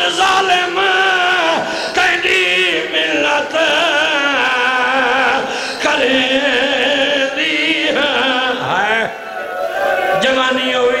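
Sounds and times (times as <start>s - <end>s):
man chanting a lament: 0.0s - 9.2s, 10.1s - 11.0s.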